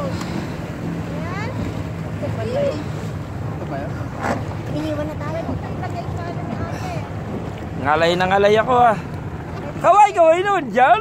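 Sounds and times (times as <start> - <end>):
motorboat engine humming: 0.0 - 11.0
water washing: 0.0 - 11.0.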